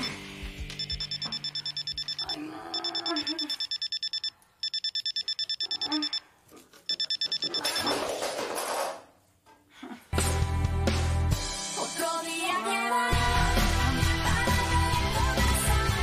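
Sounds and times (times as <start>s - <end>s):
alarm clock beeping: 0.8s - 6.2s, 6.9s - 8.0s.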